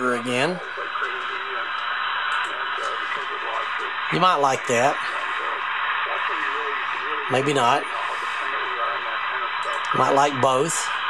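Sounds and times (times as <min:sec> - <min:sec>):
faint wavering radio voice: 0:00.0 - 0:11.0
radio band noise hiss: 0:00.0 - 0:11.0.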